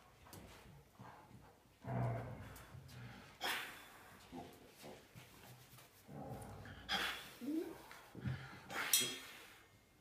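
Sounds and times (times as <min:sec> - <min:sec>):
dog making soft low vocal sounds: 0:06.9 - 0:07.9.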